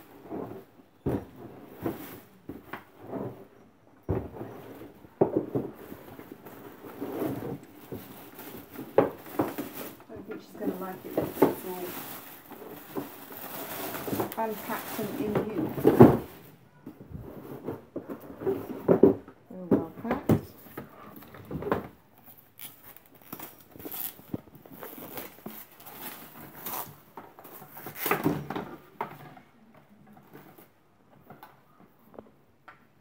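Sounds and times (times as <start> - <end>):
plastic wrap crinkling: 5.6 - 18.7, 20.5 - 28.4
plastic parts knocking: 13.9 - 22.0.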